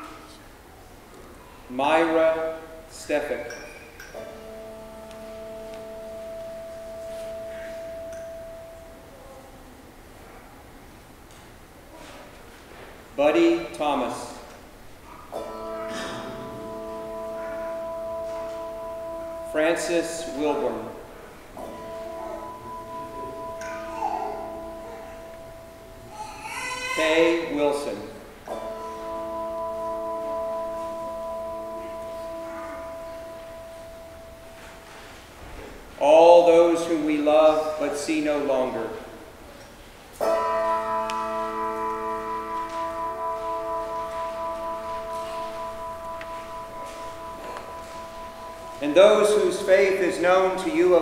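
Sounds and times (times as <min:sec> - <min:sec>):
bell ringing: 0:03.1 - 0:09.4, 0:15.1 - 0:35.2, 0:40.2 - 0:51.0
sustained pure musical tone: 0:04.2 - 0:09.6, 0:15.4 - 0:26.4, 0:27.3 - 0:35.3, 0:40.2 - 0:51.0.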